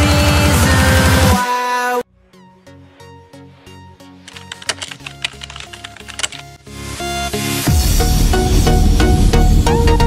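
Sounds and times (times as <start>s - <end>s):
background music: 0.0s - 10.0s
keyboard key clicks: 4.3s - 6.5s.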